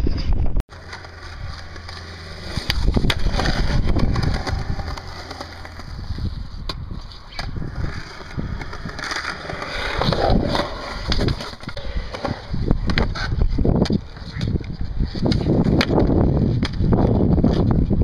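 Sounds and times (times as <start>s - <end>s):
skateboard clacks: 0.7s - 17.8s
skateboard wheels rolling on concrete: 0.7s - 18.0s.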